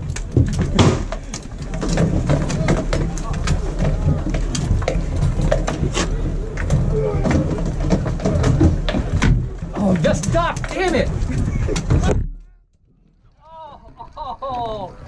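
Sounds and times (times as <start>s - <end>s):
weapons striking shields: 0.2s - 11.1s.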